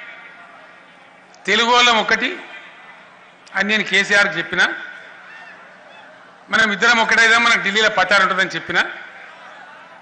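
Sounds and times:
man speaking: 6.5 - 9.0.

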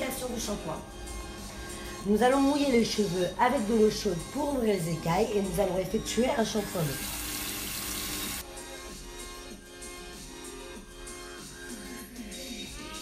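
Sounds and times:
background music: 0.0 - 13.0
hand shower spraying water on hair: 6.4 - 8.4.

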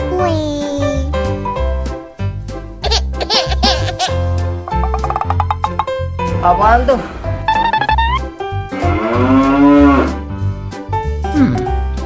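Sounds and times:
children's song music: 0.0 - 12.0
cow mooing: 8.7 - 10.2.

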